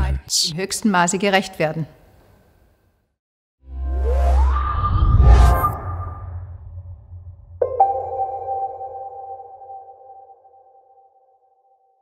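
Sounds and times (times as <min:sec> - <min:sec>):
low drone: 0:03.7 - 0:09.7
electronic chime: 0:07.6 - 0:10.9.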